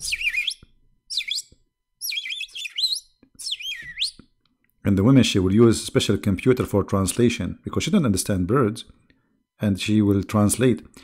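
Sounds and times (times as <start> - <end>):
bird chirping: 0.0 - 4.3.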